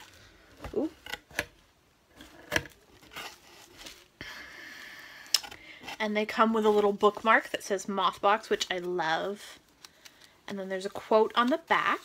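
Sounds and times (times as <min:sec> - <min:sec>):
paper and cardboard rustling: 0:02.1 - 0:04.2.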